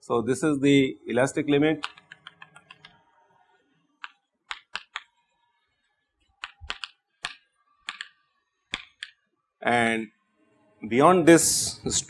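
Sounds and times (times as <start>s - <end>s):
chalk tapping on chalkboard: 1.8s - 2.9s, 4.0s - 5.1s, 6.4s - 9.2s.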